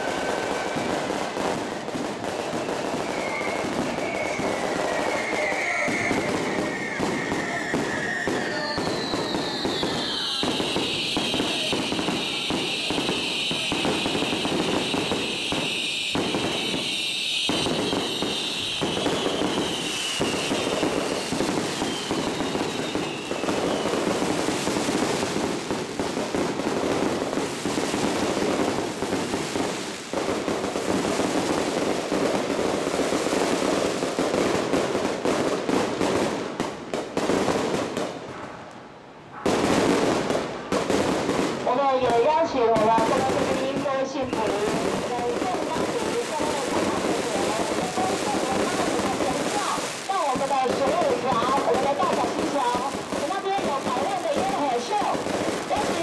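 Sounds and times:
fireworks crackling and banging: 0.0s - 56.0s.

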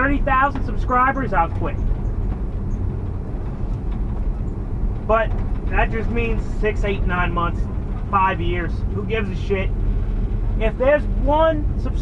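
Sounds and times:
road noise: 0.0s - 12.0s
van engine rumble: 0.0s - 12.0s.

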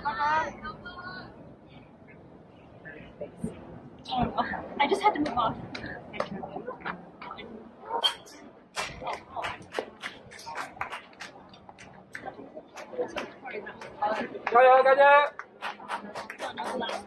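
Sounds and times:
clapping: 8.8s - 17.0s.

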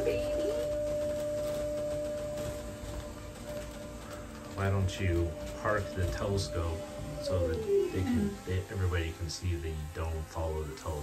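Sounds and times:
motor humming with low rumble: 0.0s - 11.0s.

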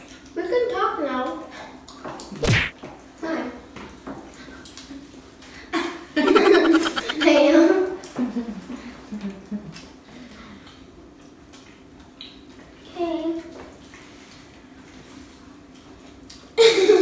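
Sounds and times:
person murmuring: 6.3s - 7.3s.

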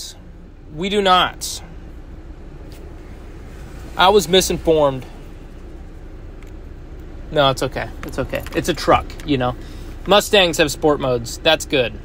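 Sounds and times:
air conditioning running: 0.0s - 12.0s
car engine idling: 0.0s - 12.0s.

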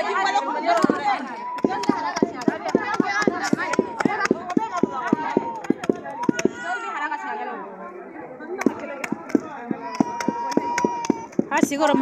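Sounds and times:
women chattering: 0.0s - 12.0s
pestles pounding in wooden mortar: 0.7s - 6.6s, 8.6s - 12.0s.

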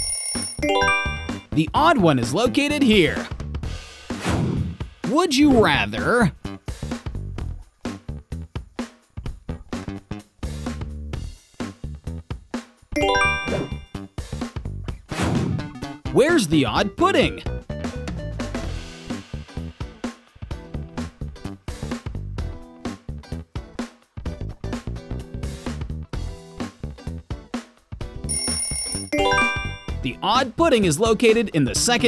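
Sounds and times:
bright bell-like chime: 0.0s - 1.5s, 13.0s - 13.9s, 28.3s - 30.0s
upbeat background music: 0.0s - 7.3s, 12.9s - 14.0s, 15.8s - 19.3s, 28.3s - 32.0s
background music with steady beat: 6.4s - 14.8s.

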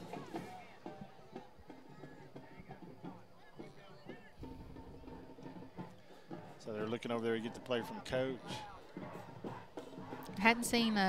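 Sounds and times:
crowd murmur: 0.0s - 11.0s
distant music: 0.0s - 11.0s
man commentating: 6.6s - 8.8s.

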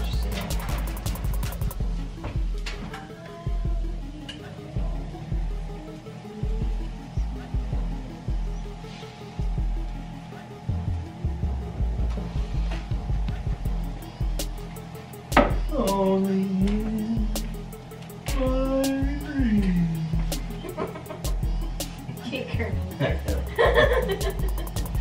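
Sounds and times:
music with heavy bass beat: 0.0s - 25.0s.

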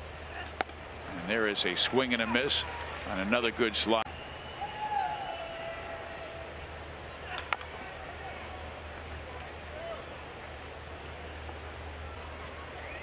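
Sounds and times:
baseball sharp crack: 0.4s - 0.8s, 7.3s - 7.8s.

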